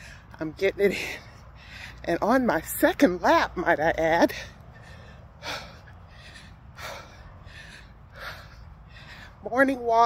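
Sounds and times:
woman breathing: 0.9 - 2.1, 4.3 - 9.5.

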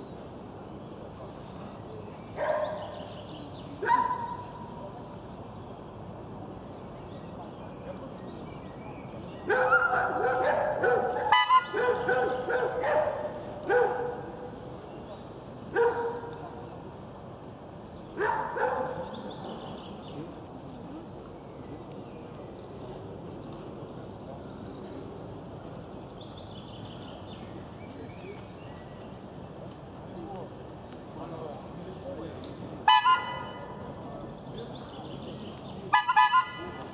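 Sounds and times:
faint background noise: 0.0 - 36.9
dog barking: 2.4 - 3.0, 3.8 - 4.4, 9.5 - 14.3, 15.7 - 16.3, 18.2 - 19.1
loud squeaky honking toot: 32.9 - 33.6, 36.0 - 36.8.

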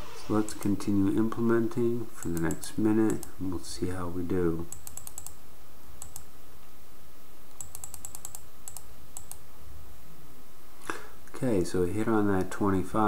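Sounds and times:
faint steady hum: 0.0 - 13.0
computer mouse clicking: 2.2 - 3.3, 4.7 - 5.4, 6.0 - 6.3, 7.5 - 9.4.

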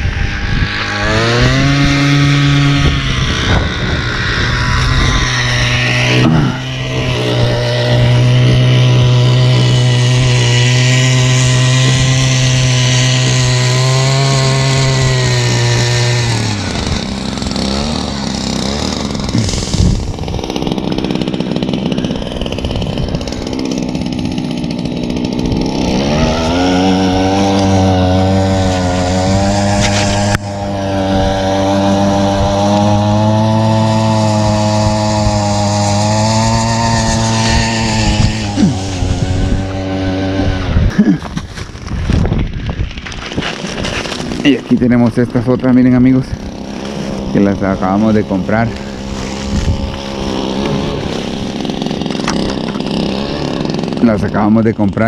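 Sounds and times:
powered ice auger drilling: 0.0 - 55.0.

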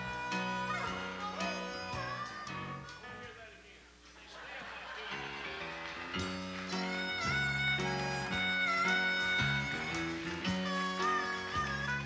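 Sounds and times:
harmonica melody with bent notes: 0.0 - 3.3, 6.2 - 12.0
band accompaniment: 0.0 - 3.4, 5.1 - 12.0.

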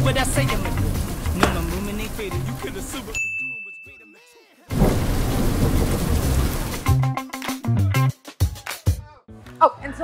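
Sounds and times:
heavy rain: 0.0 - 3.2, 4.7 - 7.0
low rumble of thunder: 4.7 - 6.8.

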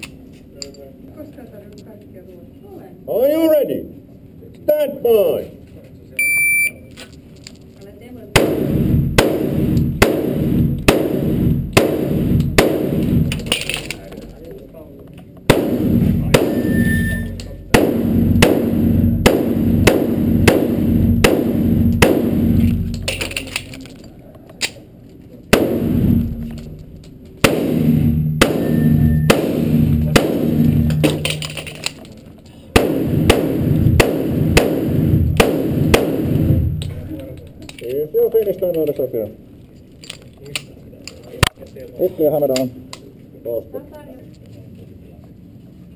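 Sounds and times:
pistol shots echoing indoors: 8.4 - 13.9, 27.4 - 31.9, 32.8 - 37.0
steel plates ringing: 16.4 - 17.7, 28.4 - 29.4.

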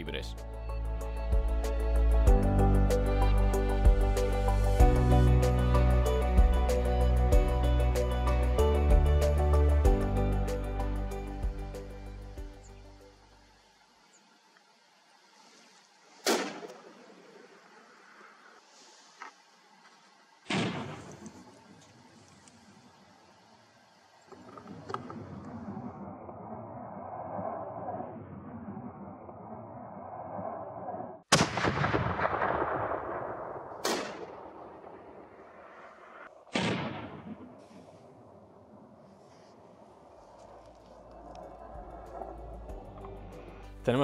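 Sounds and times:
rifle shot: 16.2 - 17.1, 20.5 - 21.3, 31.3 - 38.1.

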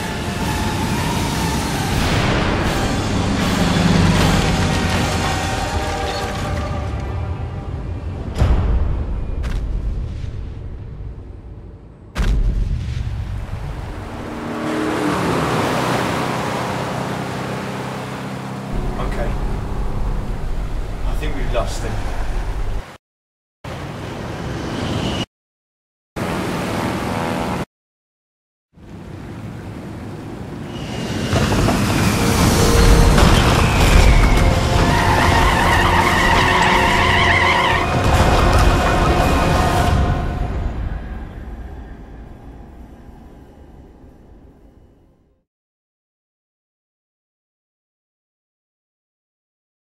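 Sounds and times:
rushing roar into low rumble: 18.7 - 22.8
car tyres squealing: 30.7 - 41.3.

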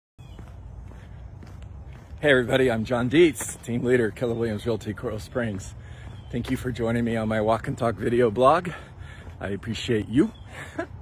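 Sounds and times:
soft footsteps: 0.2 - 11.0.

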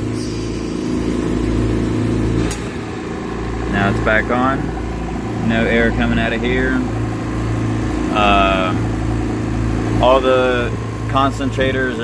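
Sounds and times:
machine hum: 0.0 - 12.0
compressor switch click: 2.1 - 3.1.

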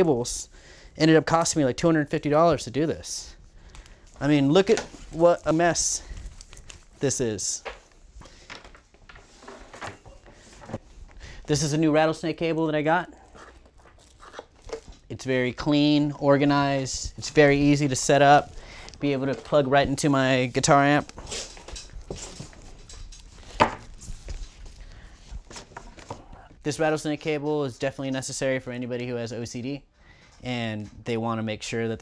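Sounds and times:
cables rustling: 2.3 - 26.6.

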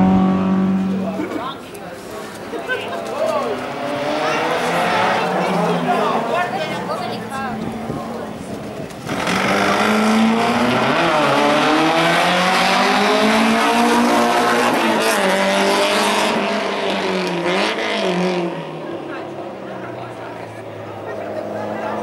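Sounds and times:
car engine revving hard: 3.6 - 6.3, 9.0 - 18.8.

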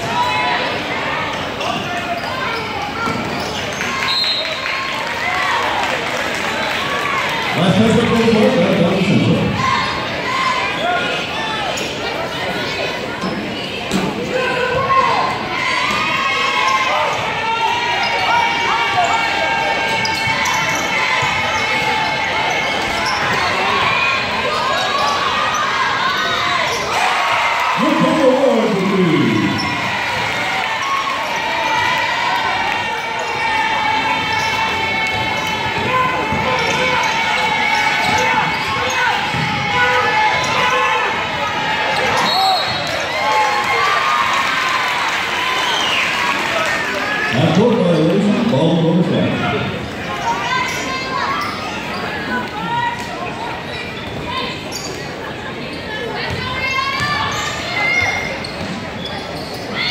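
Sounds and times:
hubbub of voices: 0.0 - 59.9.

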